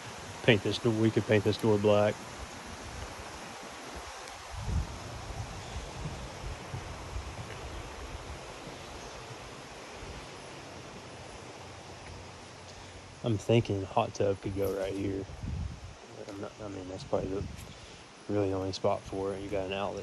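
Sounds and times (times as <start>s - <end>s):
creek rushing: 0.0s - 20.0s.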